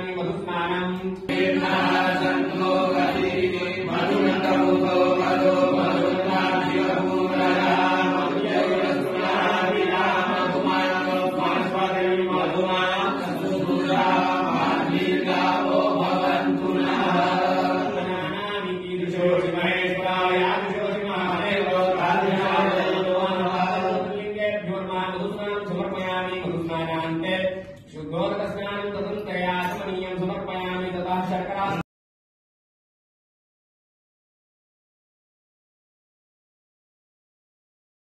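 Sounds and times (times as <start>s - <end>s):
person chanting: 1.3s - 25.9s.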